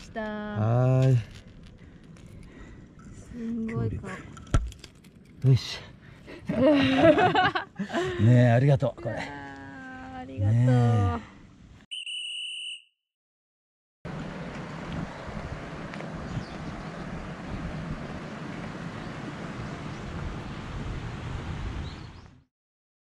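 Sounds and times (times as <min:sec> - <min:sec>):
rushing outdoor noise: 0:14.1 - 0:22.3.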